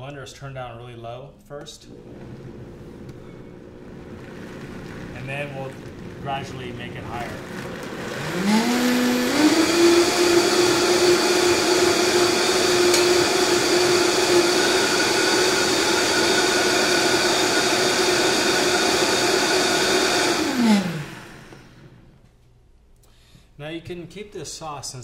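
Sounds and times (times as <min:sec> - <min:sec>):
blender motor running: 0:01.9 - 0:22.0.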